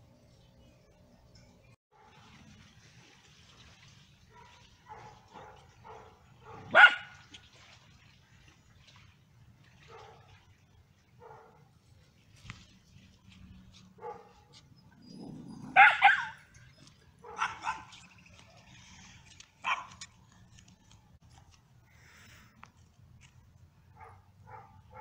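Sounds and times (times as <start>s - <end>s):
dog barking: 4.3s - 7.2s, 11.2s - 11.6s, 14.0s - 14.4s, 15.7s - 16.4s, 17.2s - 18.0s, 19.6s - 20.0s, 24.0s - 25.0s.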